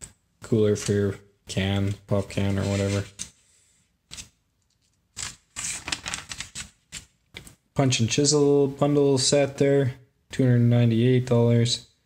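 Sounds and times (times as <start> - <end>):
glossy paper rustling: 4.1 - 7.1.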